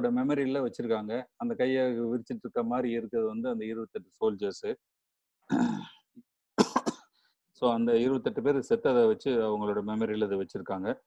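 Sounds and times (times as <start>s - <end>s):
person coughing: 5.5s - 6.0s, 6.6s - 7.1s.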